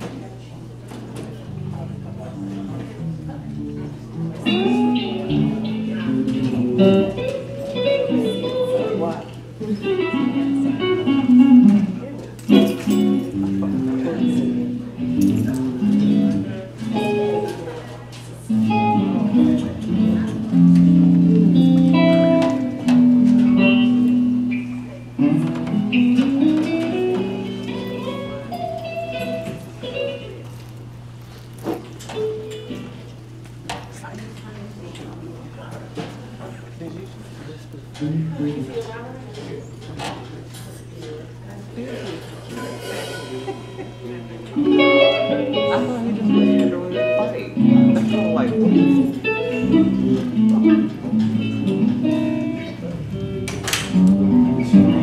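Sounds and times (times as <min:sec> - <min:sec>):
live band music with guitar: 0:00.9 - 0:34.0, 0:37.9 - 0:39.2, 0:42.0 - 0:55.0.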